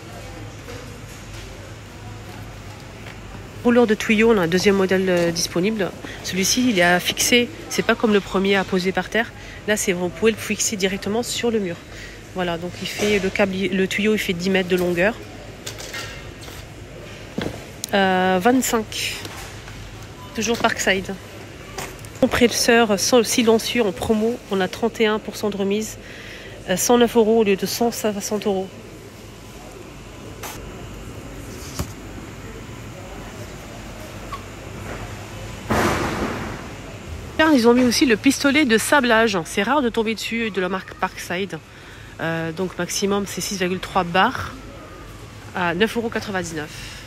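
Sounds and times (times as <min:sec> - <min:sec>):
supermarket background noise: 0:00.0 - 0:47.0.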